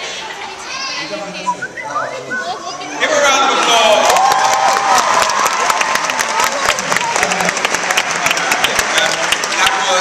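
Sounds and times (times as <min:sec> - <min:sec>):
audience chatter: 0:00.0 - 0:10.0.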